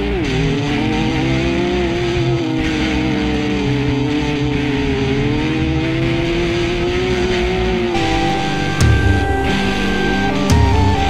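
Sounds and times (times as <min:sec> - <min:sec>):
car engine running: 0:00.0 - 0:11.0.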